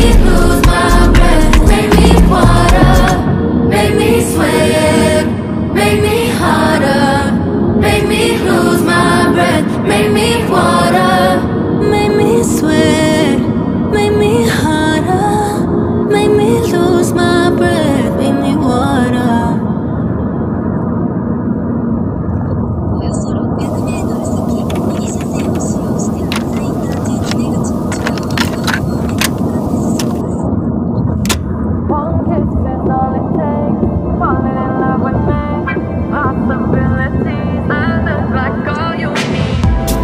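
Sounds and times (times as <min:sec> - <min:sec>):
music playing: 0:00.0 - 0:13.6, 0:32.8 - 0:40.0
car engine and road rumble: 0:20.5 - 0:38.9.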